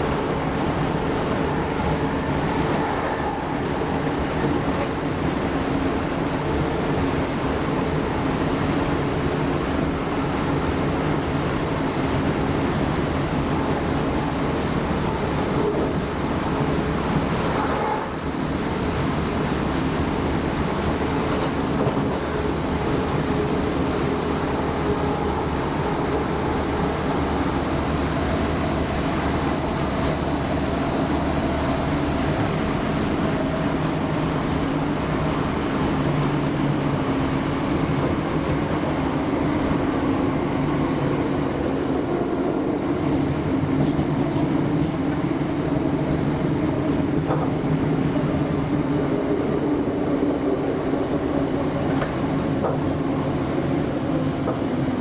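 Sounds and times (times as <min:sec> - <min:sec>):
train wheels rumbling: 0:00.0 - 0:55.0.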